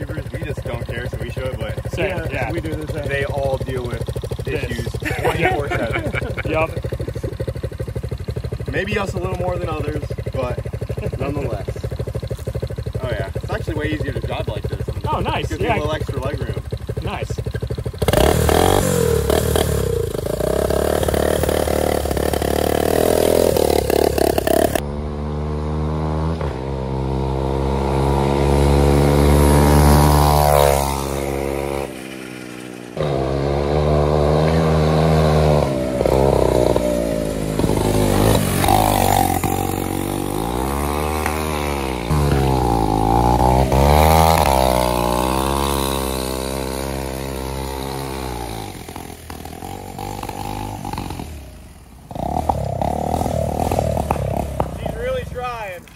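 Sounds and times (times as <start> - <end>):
small engine revving: 0.0 - 7.5, 8.4 - 55.9.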